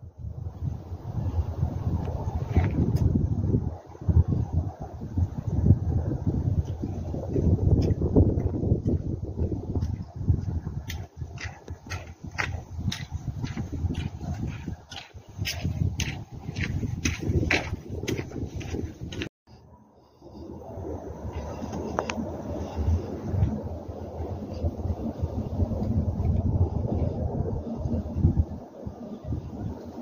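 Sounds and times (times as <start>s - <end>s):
wind buffeting microphone: 0.0s - 30.0s
footsteps on dirt trail: 6.6s - 19.3s.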